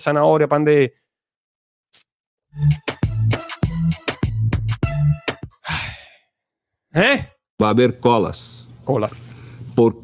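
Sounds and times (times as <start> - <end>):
rhythmic music: 2.5 - 5.7
man sighing: 5.5 - 6.4.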